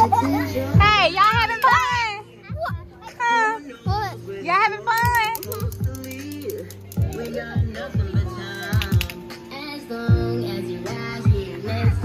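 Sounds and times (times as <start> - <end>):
background music with low beat: 0.0 - 12.0.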